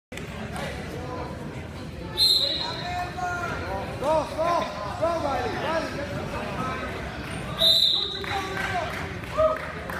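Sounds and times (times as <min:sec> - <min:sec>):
shrill referee whistle blast: 0:02.2 - 0:02.8, 0:07.6 - 0:08.2.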